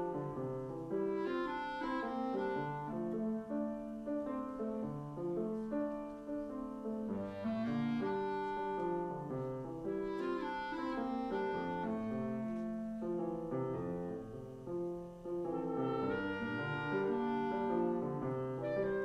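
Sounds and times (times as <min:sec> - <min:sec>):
clarinet melody: 0:00.0 - 0:19.0
piano: 0:00.0 - 0:19.0.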